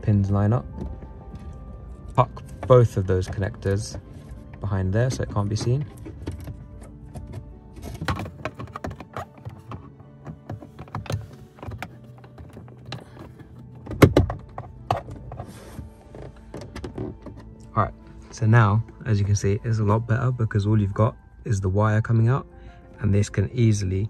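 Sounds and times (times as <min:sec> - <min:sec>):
soft background music: 0:00.0 - 0:24.0.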